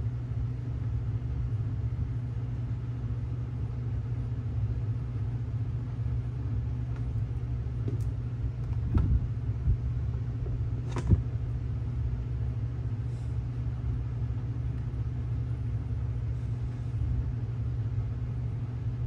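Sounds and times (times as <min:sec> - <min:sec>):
steady low rumble: 0:04.6 - 0:19.0.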